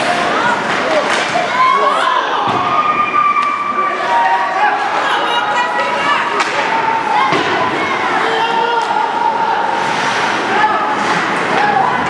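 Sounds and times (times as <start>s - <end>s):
hockey sticks and puck clacking: 0.0s - 1.6s, 5.7s - 12.0s
voices shouting: 0.0s - 12.0s.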